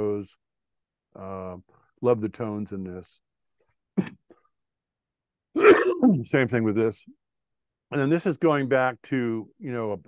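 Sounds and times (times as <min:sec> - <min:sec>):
man clearing his throat: 0:04.0 - 0:04.3, 0:05.6 - 0:06.2.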